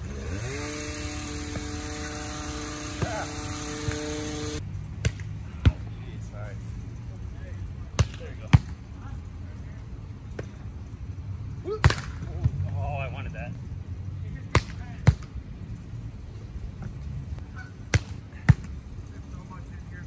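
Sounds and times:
steady machine hum: 0:00.0 - 0:04.7.

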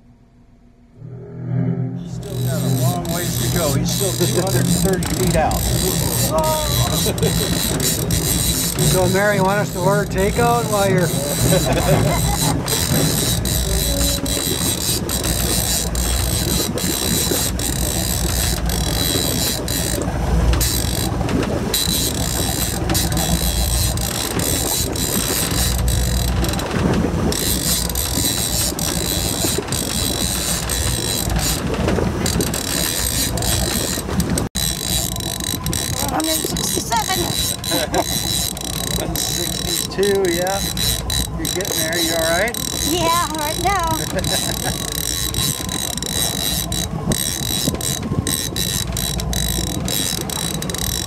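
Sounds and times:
low rumble: 0:00.0 - 0:28.2
wind: 0:00.0 - 0:51.0
fishing reel clicking: 0:02.3 - 0:26.7, 0:27.3 - 0:51.0.

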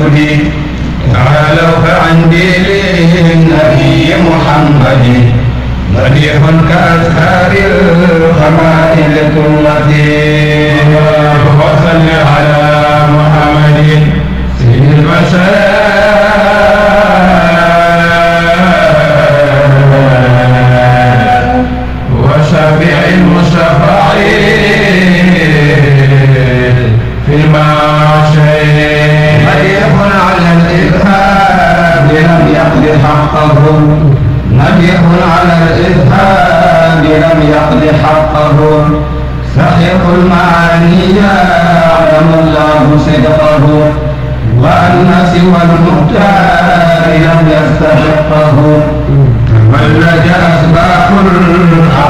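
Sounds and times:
man chanting: 0:00.0 - 0:52.0.

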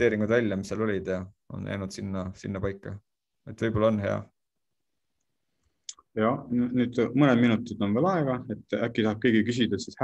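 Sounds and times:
man speaking: 0:05.9 - 0:10.0.

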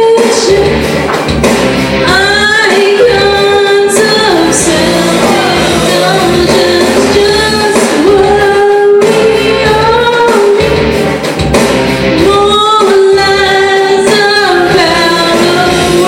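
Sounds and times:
woman singing: 0:00.0 - 0:00.9, 0:02.0 - 0:10.8, 0:12.2 - 0:16.0
karaoke backing track: 0:00.0 - 0:16.0.

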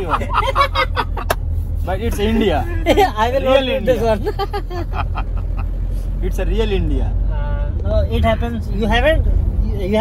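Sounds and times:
car interior rumble while driving: 0:00.0 - 0:10.0.

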